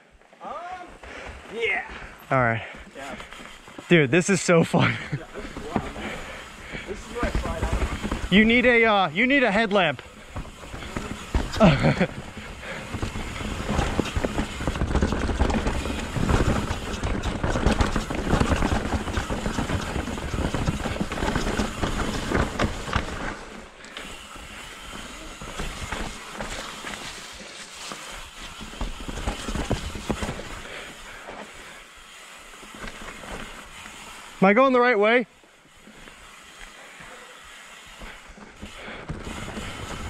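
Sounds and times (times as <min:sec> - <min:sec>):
bike tyres rumbling: 0:00.0 - 0:40.0
bike clattering over rocks: 0:04.8 - 0:31.6, 0:37.9 - 0:40.0.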